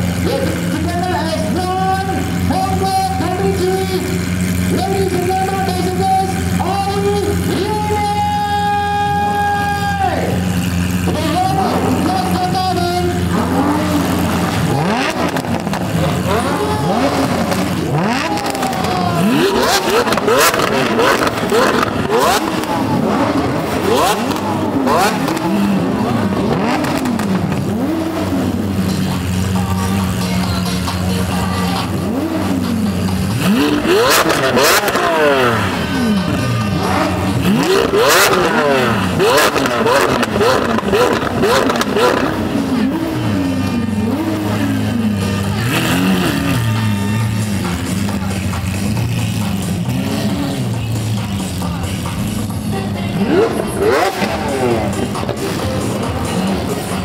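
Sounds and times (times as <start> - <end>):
crowd voices: 0.0 - 57.0
supercar engines revving: 0.0 - 57.0
sharp exhaust cracks: 0.1 - 30.2, 30.8 - 57.0.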